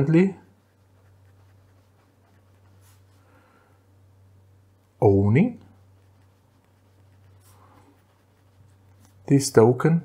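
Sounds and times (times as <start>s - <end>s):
steady low hum: 0.0s - 10.0s
pen scratching on paper: 0.6s - 3.1s, 5.7s - 9.3s.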